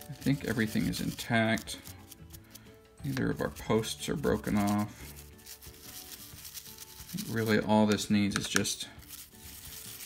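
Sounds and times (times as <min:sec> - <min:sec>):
soft background music: 0:00.0 - 0:10.0
toothbrush brushing plastic: 0:00.0 - 0:10.0.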